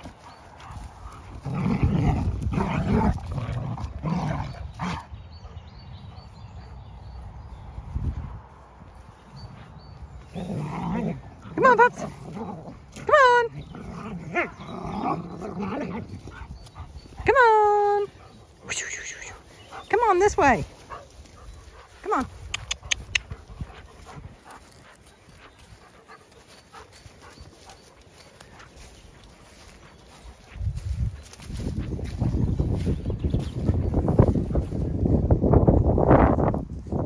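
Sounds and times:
soft footfalls on grass: 0:00.0 - 0:02.1, 0:07.5 - 0:10.6, 0:19.3 - 0:34.9
dog growling: 0:13.6 - 0:16.1
dog panting: 0:20.8 - 0:30.6.

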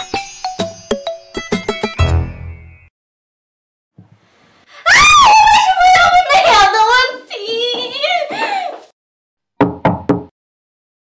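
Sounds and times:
knocks on a door: 0:09.6 - 0:10.3.

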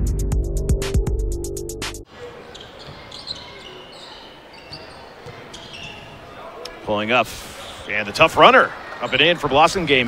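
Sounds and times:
sneakers squeaking: 0:02.1 - 0:06.8, 0:07.6 - 0:08.1, 0:08.7 - 0:10.0.

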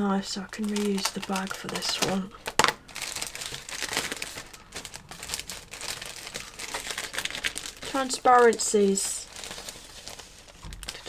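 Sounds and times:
plastic bag crinkling: 0:00.2 - 0:11.0.

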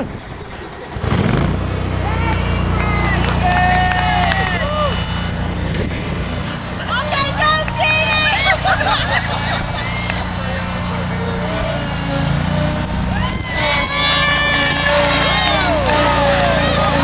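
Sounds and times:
riding lawnmower engine running: 0:00.0 - 0:17.0
people shouting: 0:02.0 - 0:17.0
people laughing: 0:02.1 - 0:17.0.

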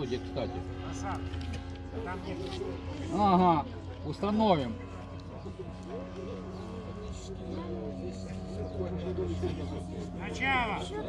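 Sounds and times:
faint speech: 0:00.0 - 0:11.0
loud commentary: 0:00.0 - 0:11.0
steady low hum: 0:00.0 - 0:11.0.

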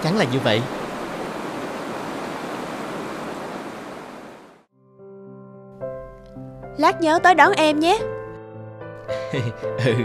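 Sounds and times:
rain falling: 0:00.0 - 0:04.7
soft music: 0:04.7 - 0:10.0.

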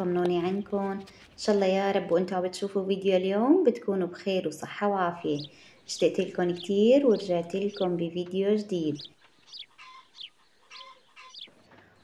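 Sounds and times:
birds chirping faintly: 0:00.0 - 0:12.0.

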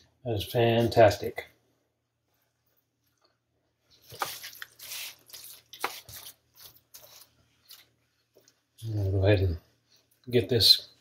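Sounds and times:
wet squishing of meat: 0:03.9 - 0:08.9
foil pan crinkling: 0:04.0 - 0:07.9.

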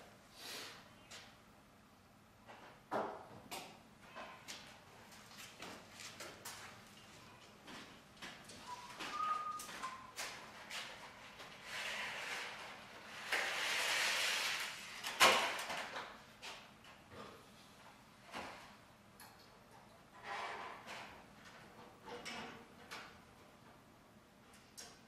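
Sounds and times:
brief squeak: 0:08.7 - 0:10.1.

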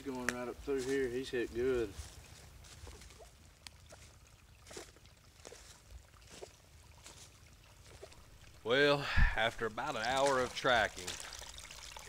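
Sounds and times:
footsteps in dry leaves: 0:00.1 - 0:08.4
small ticks: 0:03.6 - 0:04.1.

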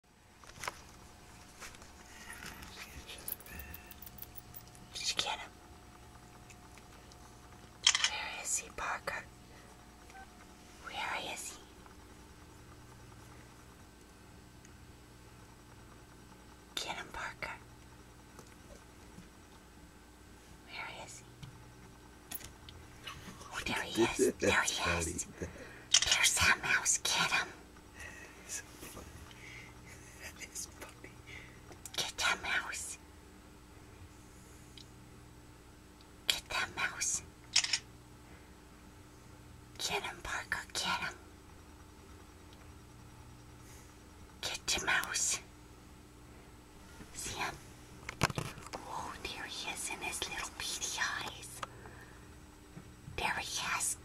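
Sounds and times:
faint low hum: 0:00.1 - 0:54.0
light scratching and ticking: 0:00.4 - 0:14.8
person whispering: 0:02.1 - 0:04.1, 0:04.9 - 0:05.6, 0:07.8 - 0:09.3, 0:10.8 - 0:11.7, 0:16.8 - 0:17.6, 0:20.7 - 0:21.2, 0:23.4 - 0:27.6, 0:30.1 - 0:33.0, 0:36.3 - 0:37.7, 0:39.8 - 0:41.2, 0:44.4 - 0:45.5, 0:47.2 - 0:47.6, 0:48.8 - 0:51.6, 0:53.2 - 0:54.0.

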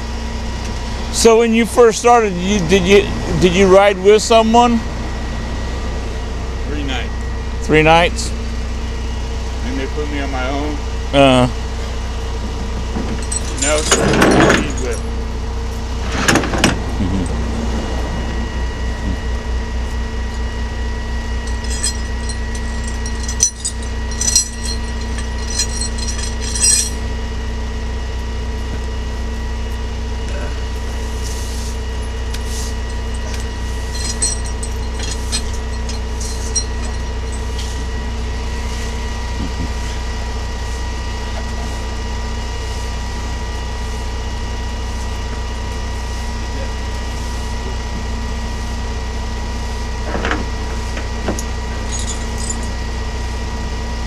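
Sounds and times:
vehicle engine idling: 0:00.0 - 0:54.0
metallic clinks and rattles: 0:13.1 - 0:15.1, 0:21.4 - 0:27.1, 0:32.8 - 0:37.6, 0:51.3 - 0:52.8.

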